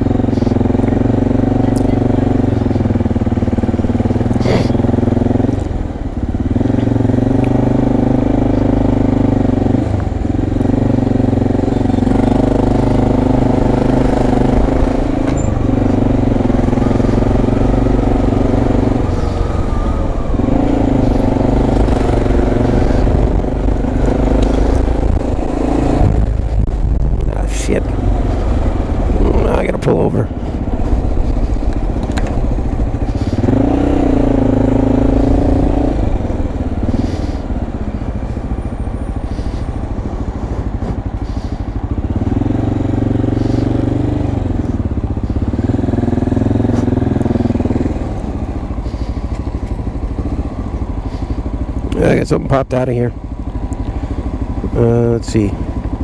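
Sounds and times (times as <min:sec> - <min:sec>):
motorcycle engine revving: 0:00.0 - 0:56.0.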